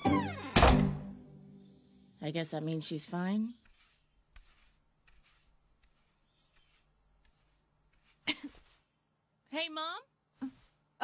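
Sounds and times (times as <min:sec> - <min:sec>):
wooden door slamming shut: 0:00.1 - 0:01.1.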